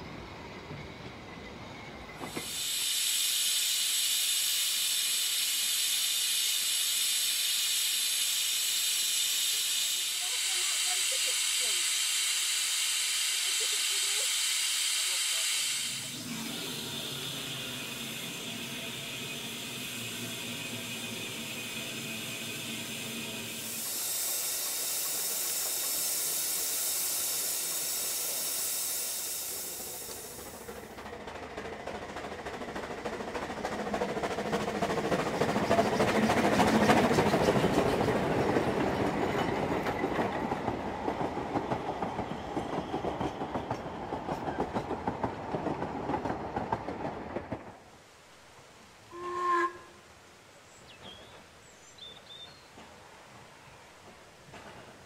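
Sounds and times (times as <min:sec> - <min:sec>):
steam hissing: 0:02.1 - 0:46.2
steam train exhaust beats: 0:02.2 - 0:47.0.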